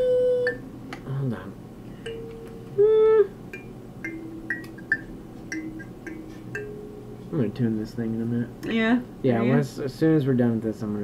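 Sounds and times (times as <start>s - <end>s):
faint steady lower tone: 0.0s - 0.7s, 2.0s - 7.8s
high notes from wooden instrument: 2.0s - 7.5s
loud held tone: 2.1s - 7.6s.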